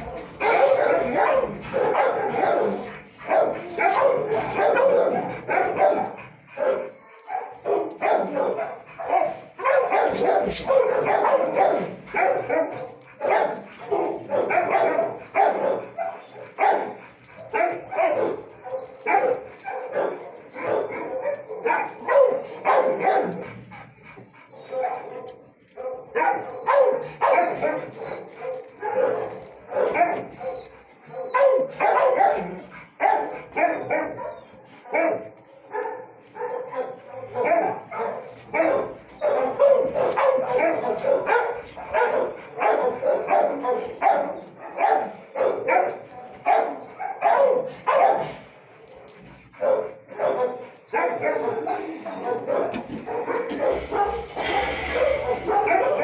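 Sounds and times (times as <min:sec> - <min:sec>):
dogs barking: 0:00.0 - 0:56.0.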